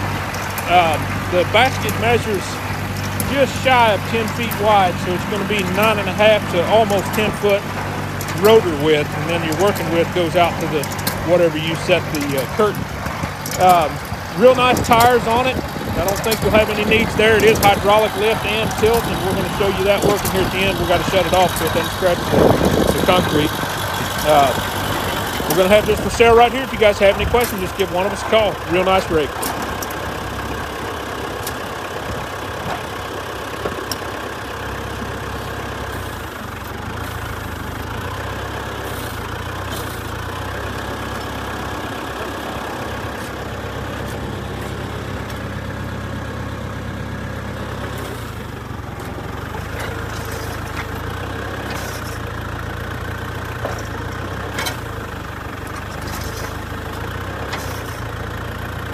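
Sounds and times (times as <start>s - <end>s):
tractor engine running: 0.0s - 58.9s.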